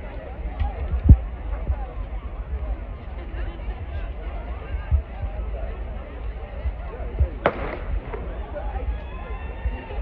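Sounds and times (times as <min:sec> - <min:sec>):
crowd chatter: 0:00.0 - 0:10.0
starter's pistol shot with echo: 0:07.4 - 0:08.2.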